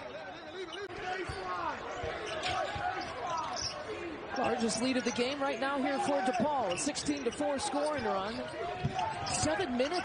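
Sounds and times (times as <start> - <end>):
voices in arena: 0.0 - 10.0.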